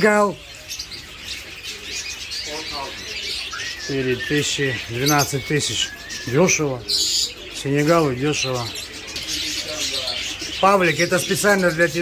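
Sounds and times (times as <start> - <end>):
budgerigars chirping and chattering: 0.0 - 12.0.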